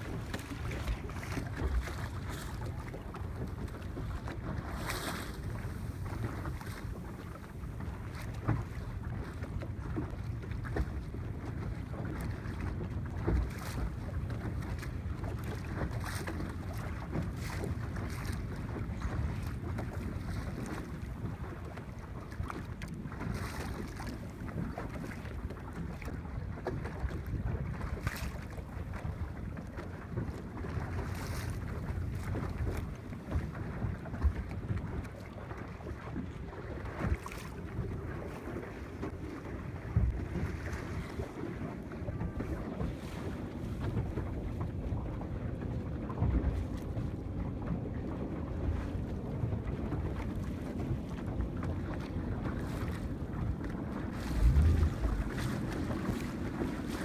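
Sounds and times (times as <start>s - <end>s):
water slapping against boat: 0.0s - 57.0s
wind buffeting microphone: 0.0s - 57.0s.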